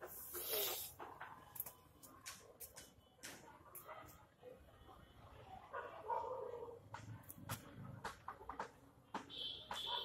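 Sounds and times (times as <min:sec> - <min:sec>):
dog barking: 0:05.7 - 0:06.8, 0:09.8 - 0:10.0.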